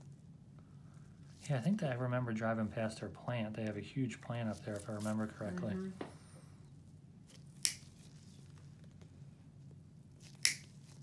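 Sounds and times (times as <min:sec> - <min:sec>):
nail nippers snapping: 0:07.6 - 0:07.9, 0:10.2 - 0:10.8.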